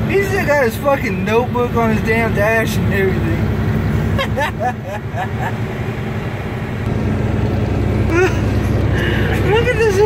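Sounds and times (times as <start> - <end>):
diesel engine drone: 0.0 - 10.0
road noise: 0.0 - 10.0.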